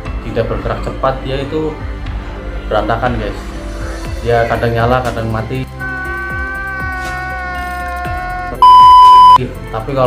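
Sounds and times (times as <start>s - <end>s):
falling wailing cry: 5.8s - 9.4s
high-pitched test-card beep: 8.6s - 9.4s.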